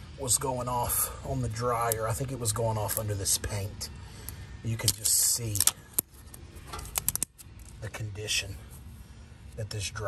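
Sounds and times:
small clicks and scrapes on metal: 4.2s - 7.8s.

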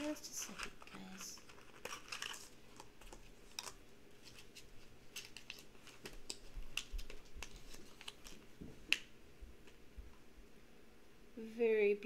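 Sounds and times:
plastic bag rustling: 0.0s - 8.9s.

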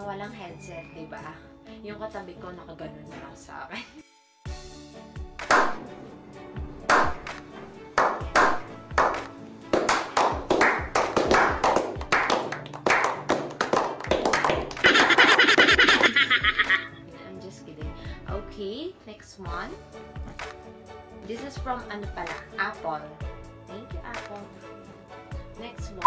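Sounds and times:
music: 0.0s - 26.0s
group clapping: 5.4s - 5.8s, 6.8s - 16.0s.

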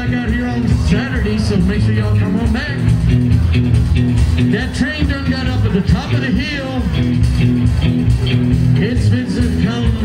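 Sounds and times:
bass notes: 0.0s - 10.0s
drums: 0.0s - 10.0s
guitar: 0.0s - 10.0s
man singing: 4.5s - 7.1s, 8.8s - 10.0s.

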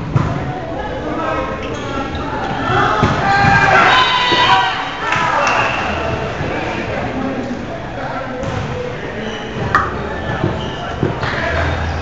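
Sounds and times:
players shouting in a gym: 0.2s - 7.6s
volleyball thuds: 9.7s - 10.6s.

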